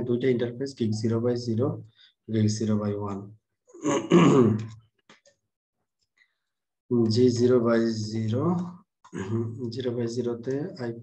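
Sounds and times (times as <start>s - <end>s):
man clearing his throat: 3.8s - 4.7s, 9.2s - 9.5s.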